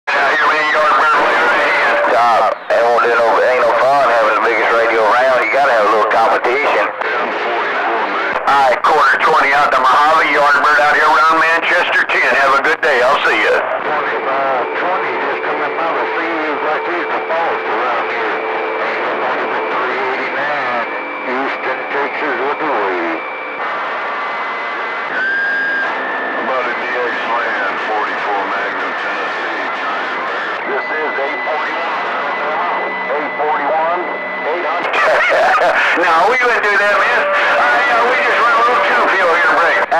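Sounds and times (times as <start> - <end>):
garbled radio voices: 0.1 - 39.9
radio static: 0.1 - 39.9
steady radio whistle: 0.1 - 39.9.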